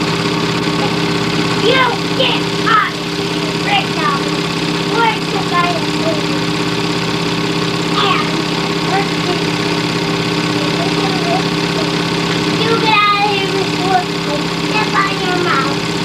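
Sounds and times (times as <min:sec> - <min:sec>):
steady mechanical hum: 0:00.0 - 0:16.0
faint voices talking: 0:00.7 - 0:06.7, 0:07.8 - 0:16.0.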